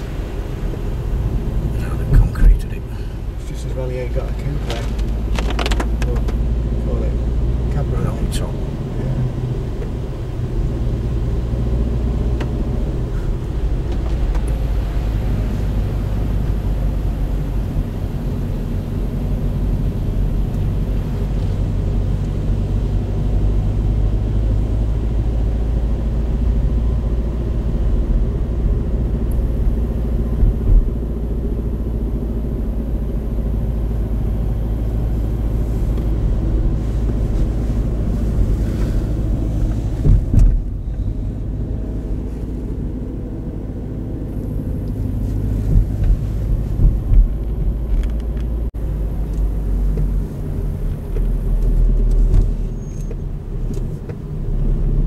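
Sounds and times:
car engine and tyre rumble: 0:00.0 - 0:55.0
knocks from road bumps: 0:39.9 - 0:40.7.

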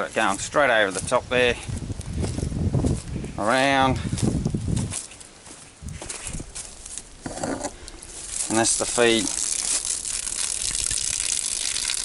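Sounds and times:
footsteps on dry leaves: 0:00.0 - 0:10.8.

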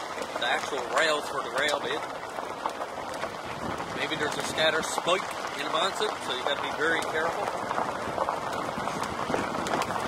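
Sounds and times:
car tyres rolling on gravel: 0:00.0 - 0:10.0
small stones crunching and popping: 0:00.0 - 0:10.0.

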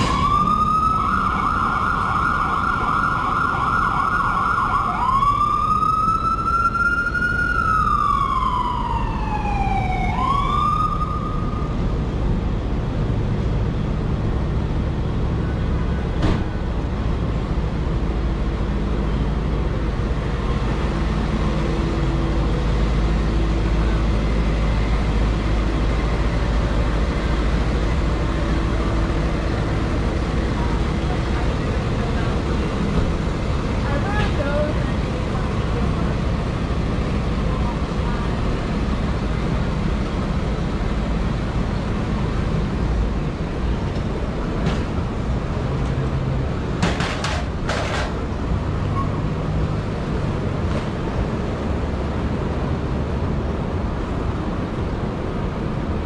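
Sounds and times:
emergency vehicle siren: 0:00.0 - 0:13.1, 0:14.1 - 0:45.2
traffic rumble: 0:00.0 - 0:56.0.

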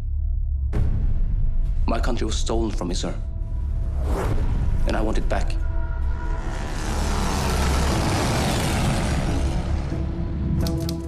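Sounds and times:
deep rumble: 0:03.2 - 0:10.7
loud rushing whoosh: 0:05.6 - 0:10.3.

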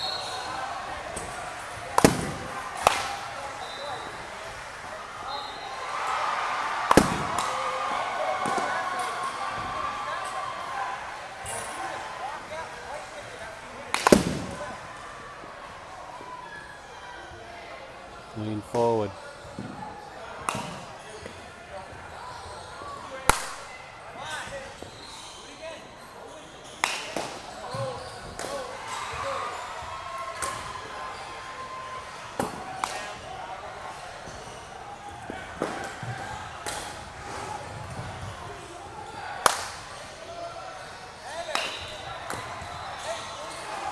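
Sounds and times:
baseball bat cracking ball: 0:01.9 - 0:03.2, 0:06.9 - 0:07.6, 0:13.9 - 0:14.6.

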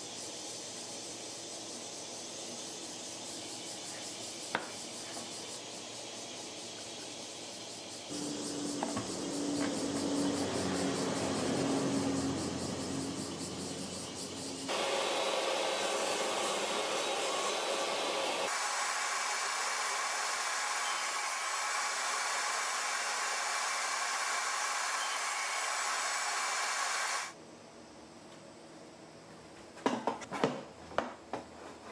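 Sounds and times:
motor or blower running: 0:08.1 - 0:27.4.

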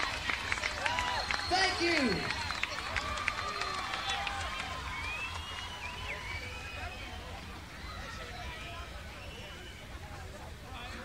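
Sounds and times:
crowd clapping: 0:00.0 - 0:06.9
crowd shouting: 0:00.0 - 0:10.0
crowd murmur: 0:00.0 - 0:11.0.

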